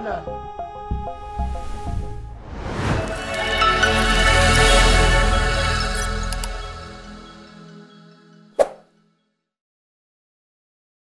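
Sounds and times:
background music held notes: 0.0s - 9.2s.

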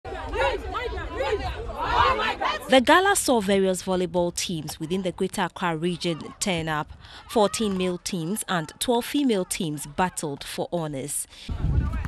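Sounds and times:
women chattering: 0.1s - 11.4s.

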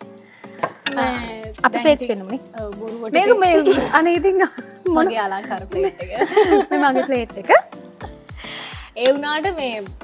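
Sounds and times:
music with steady beat: 0.0s - 10.0s
soft breathy hiss: 8.3s - 9.0s.

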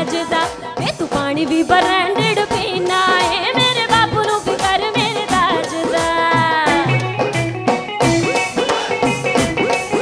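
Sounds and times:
drums quick steady beat: 0.0s - 10.0s
live band playing: 0.0s - 10.0s.

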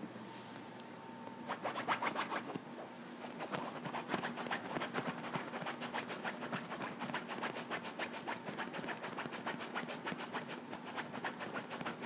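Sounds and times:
puppy paws scratching cushion: 1.4s - 12.0s.

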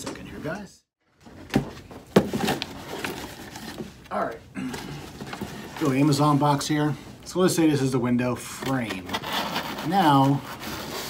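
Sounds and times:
cardboard scraping and rustling: 1.2s - 4.0s.

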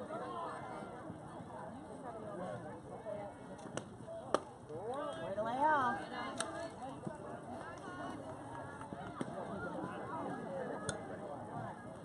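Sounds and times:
softball bat crack: 3.6s - 4.6s.

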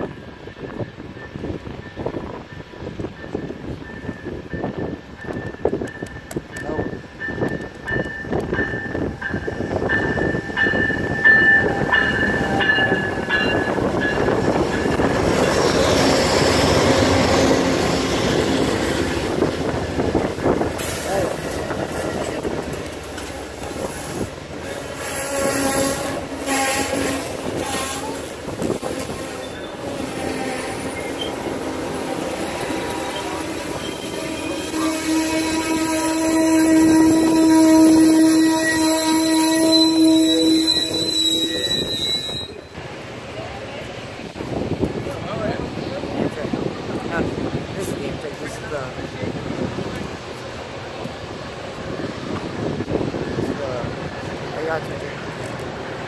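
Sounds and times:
diesel locomotives rumbling past: 0.0s - 56.0s
train cars rolling: 0.0s - 56.0s
wheels and brakes squealing: 23.8s - 31.5s, 32.6s - 42.8s.

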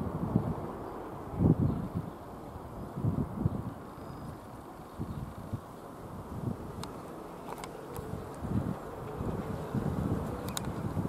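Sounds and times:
distant airplane engine droning: 0.0s - 11.0s
wind on microphone: 0.0s - 11.0s.

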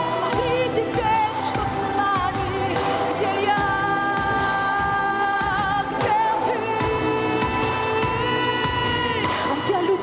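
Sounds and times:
pop accompaniment: 0.0s - 10.0s
woman singing with vibrato: 0.0s - 10.0s.

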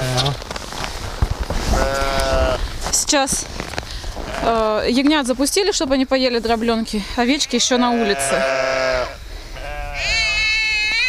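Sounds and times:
sheep bleating: 1.7s - 2.6s, 4.2s - 4.8s, 7.3s - 11.0s.

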